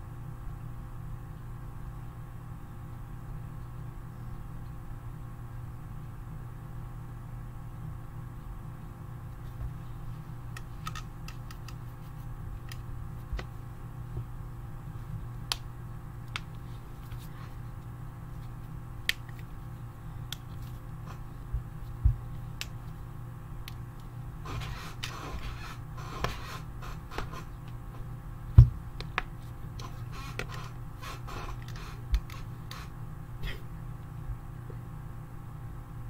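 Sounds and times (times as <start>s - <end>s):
low steady hum: 0.0s - 36.0s.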